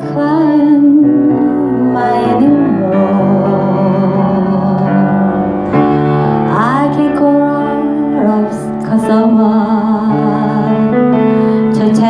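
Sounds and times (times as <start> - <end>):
woman singing pop ballad: 0.0 - 5.4, 6.2 - 12.0
upright piano accompaniment: 0.0 - 12.0.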